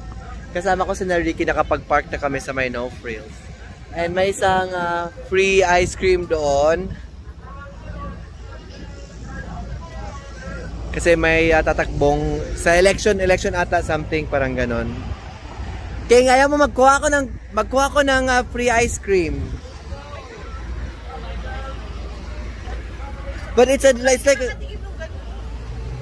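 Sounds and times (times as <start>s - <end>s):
faint voices talking: 0.0s - 26.0s
traffic rumble: 0.0s - 26.0s.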